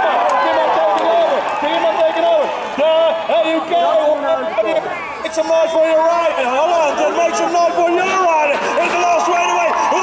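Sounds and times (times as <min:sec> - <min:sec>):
crowd noise: 0:00.0 - 0:10.0
man commentating over loudspeaker: 0:00.0 - 0:10.0.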